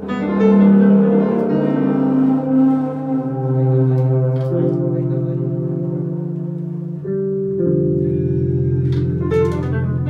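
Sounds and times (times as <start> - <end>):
bass instrument holding low notes: 0.0 - 10.0.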